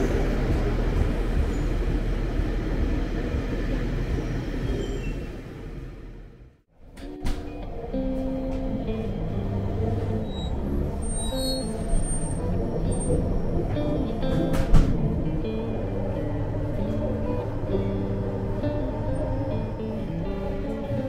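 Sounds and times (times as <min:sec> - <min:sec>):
moving train rumble: 0:00.0 - 0:21.0
background music held notes: 0:06.8 - 0:21.0.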